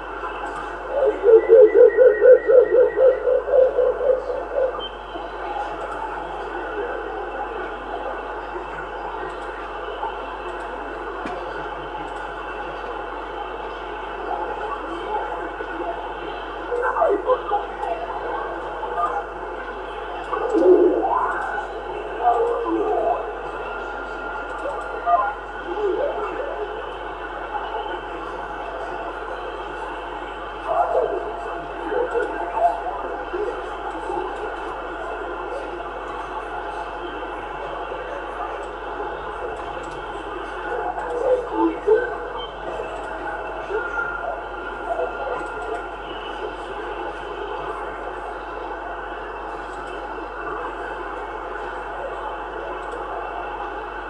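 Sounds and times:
faint radio voices: 0.0s - 54.0s.

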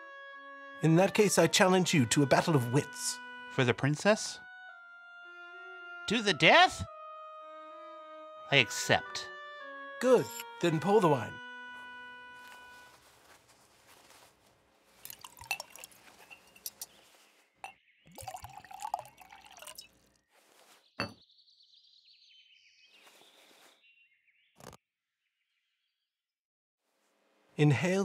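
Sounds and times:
glass clink: 15.0s - 16.9s, 17.6s - 19.9s, 21.0s - 21.2s
wine pouring into glasses: 15.0s - 16.9s, 18.1s - 20.1s.

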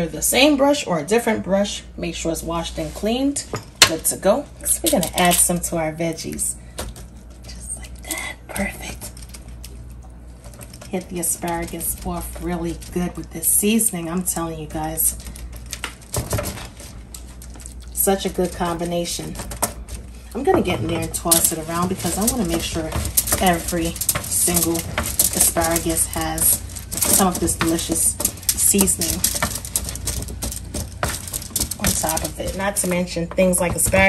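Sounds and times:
aluminium foil crinkling: 4.6s - 34.0s
basting brush tapping and rustling: 8.6s - 34.0s.

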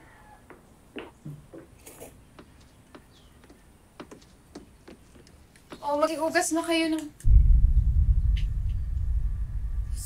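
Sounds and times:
deep low rumble: 7.2s - 10.0s.

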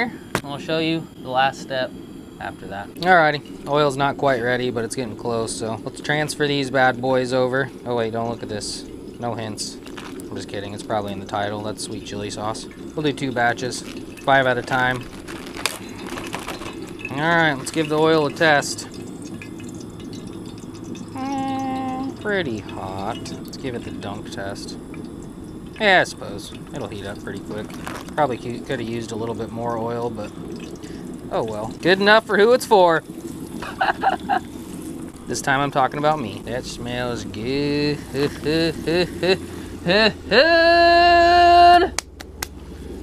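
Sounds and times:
steady humming tone: 0.0s - 43.0s
water sizzling in hot oil: 0.3s - 41.7s
man vocalizing without words: 37.3s - 42.0s.

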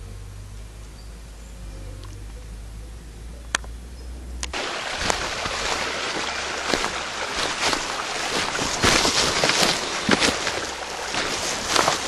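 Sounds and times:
branches crunching: 4.5s - 12.0s
footsteps rustling through dry leaves: 4.5s - 12.0s
small stream rushing: 4.5s - 12.0s.

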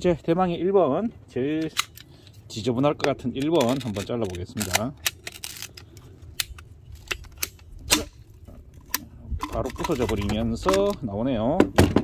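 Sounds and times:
plastic housing snapping: 6.4s - 11.0s.

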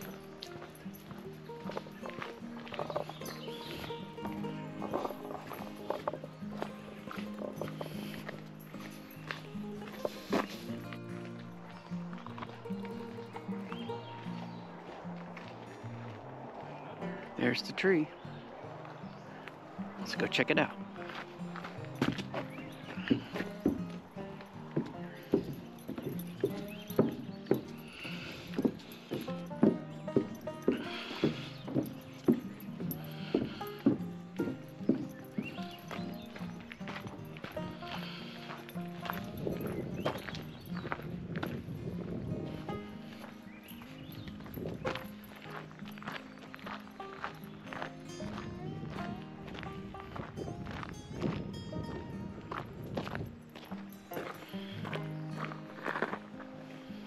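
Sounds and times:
footsteps on wooden planks: 0.0s - 17.4s, 20.7s - 57.0s
background music: 0.0s - 57.0s.

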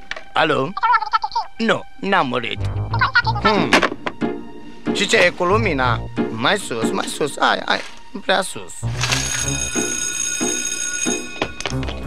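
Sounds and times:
cartoon music with bass notes: 0.7s - 7.2s, 8.8s - 12.0s
bright ringing bell-like tone: 9.1s - 11.9s.

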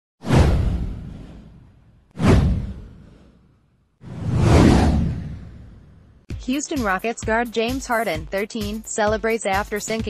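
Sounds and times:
deep whoosh sweeping down: 0.2s - 3.4s, 4.0s - 6.3s.

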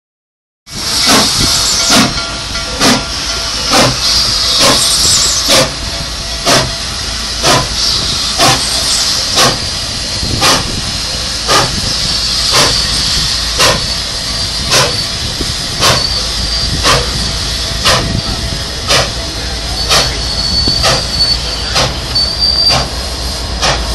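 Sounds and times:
steady hiss of steam: 0.7s - 23.9s
steam locomotive exhaust chuffs: 0.7s - 23.9s.

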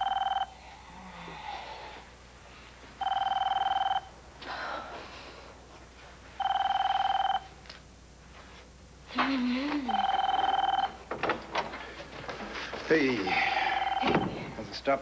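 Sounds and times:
telephone ringing: 0.0s - 0.6s, 3.0s - 4.2s, 6.4s - 7.6s, 9.9s - 11.1s, 12.9s - 14.5s.

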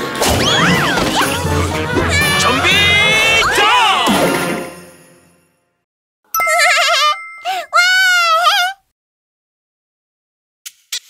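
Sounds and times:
music: 0.0s - 5.8s
cartoon voices shouting and cheering: 0.3s - 4.3s, 6.5s - 8.9s.

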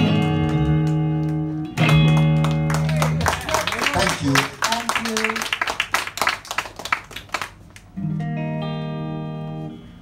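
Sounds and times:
audience applauding: 0.0s - 7.9s.

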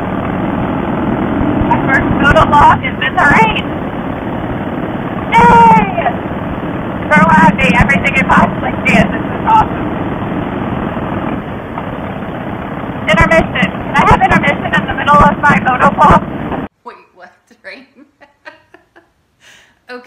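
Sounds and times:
motorcycle engine drone: 0.0s - 16.7s
wind rush on microphone: 0.0s - 16.7s.

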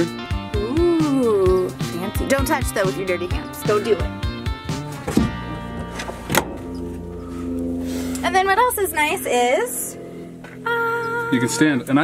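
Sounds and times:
background music with held notes: 0.0s - 12.0s.

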